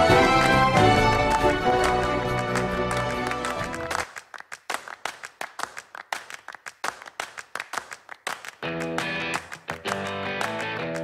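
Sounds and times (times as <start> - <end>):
rapid clap-like percussion hits: 0.0 - 11.0.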